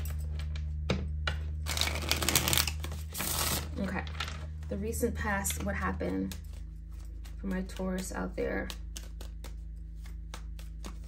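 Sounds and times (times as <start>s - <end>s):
cards being shuffled: 1.5s - 4.6s, 5.4s - 11.0s
cards tapping: 5.6s - 11.0s.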